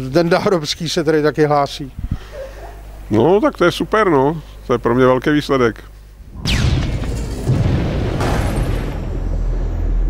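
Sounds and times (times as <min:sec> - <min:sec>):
bright crash: 0:06.3 - 0:10.0
deep booming rumble: 0:06.3 - 0:10.0.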